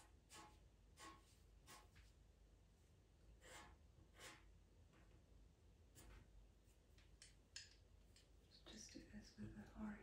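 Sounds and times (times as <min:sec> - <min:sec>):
pencil scratching on paper: 0:00.0 - 0:02.2, 0:03.4 - 0:04.6.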